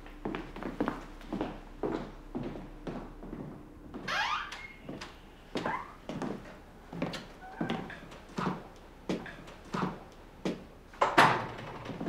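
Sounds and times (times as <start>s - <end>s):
rising squeak: 4.1s - 4.9s
footsteps on hard floor: 4.8s - 9.2s.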